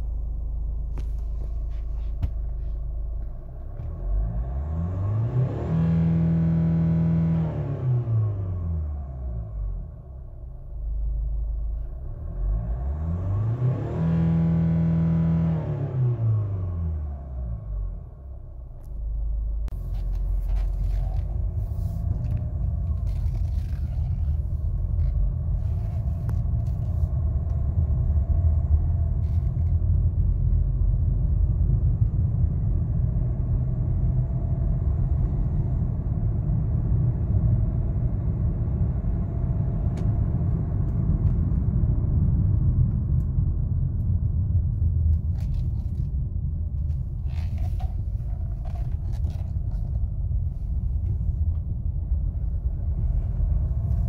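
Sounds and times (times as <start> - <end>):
car engine revving: 0.0 - 9.7, 12.2 - 17.8, 19.7 - 30.6
engine and road rumble while driving: 0.0 - 54.0.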